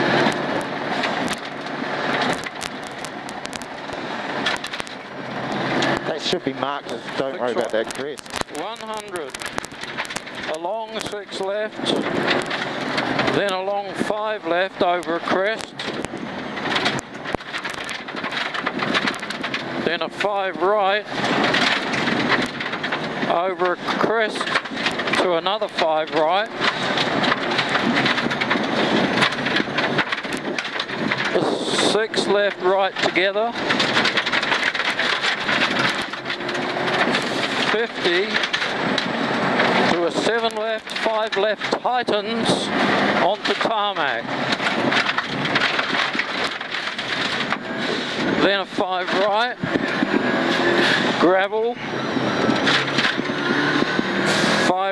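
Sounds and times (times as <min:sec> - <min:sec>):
rally car engine running hard: 0:00.0 - 0:54.9
sharp clicks and knocks: 0:00.0 - 0:54.9
tyres on gravel: 0:00.0 - 0:54.9.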